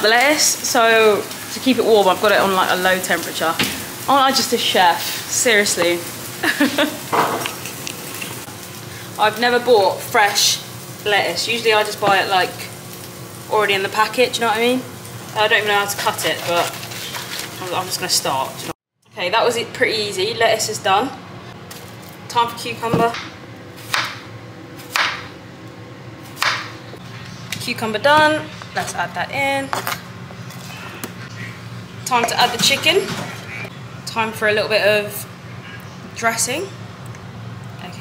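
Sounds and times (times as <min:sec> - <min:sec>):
chicken sizzling in a frying pan: 0:00.0 - 0:18.8.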